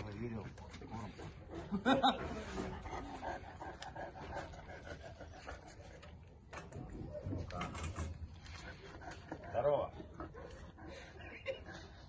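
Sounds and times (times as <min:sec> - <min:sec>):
dog panting: 0:00.0 - 0:06.5, 0:08.3 - 0:12.0.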